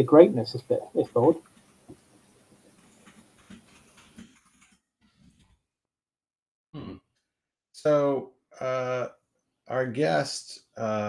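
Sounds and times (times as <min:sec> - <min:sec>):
person murmuring hmm: 0:06.8 - 0:07.0.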